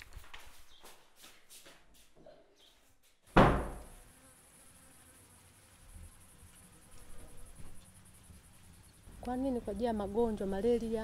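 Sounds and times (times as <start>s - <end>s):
loud sudden thump: 3.3s - 4.0s
high insect drone: 3.3s - 11.0s.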